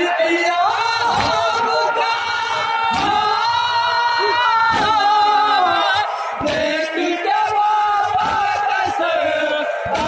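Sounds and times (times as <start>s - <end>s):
men singing a mourning lament: 0.0s - 10.0s.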